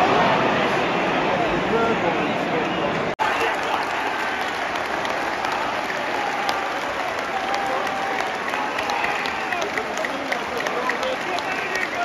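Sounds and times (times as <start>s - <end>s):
stadium crowd cheering: 0.0s - 12.0s
handclaps: 3.5s - 12.0s.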